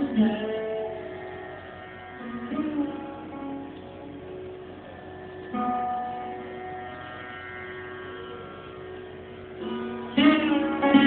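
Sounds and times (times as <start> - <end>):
sarod strings ringing: 0.0 - 11.0.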